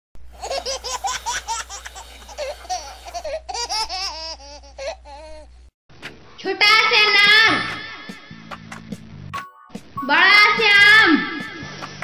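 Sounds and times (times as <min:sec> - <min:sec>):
child laughing: 0:00.4 - 0:05.5.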